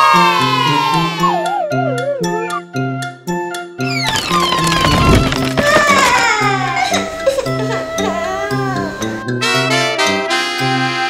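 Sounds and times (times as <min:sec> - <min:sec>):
background music: 0:00.0 - 0:11.0
girl wailing: 0:05.6 - 0:09.2.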